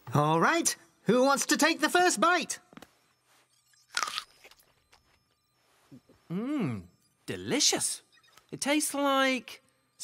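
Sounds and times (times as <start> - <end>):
fruit crunch bite: 3.9 - 4.6.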